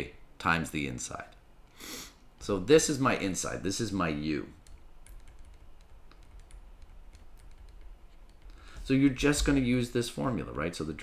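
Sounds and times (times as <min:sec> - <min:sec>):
faint low hum: 0:00.0 - 0:11.0
stylus tapping on tablet screen: 0:05.1 - 0:08.6.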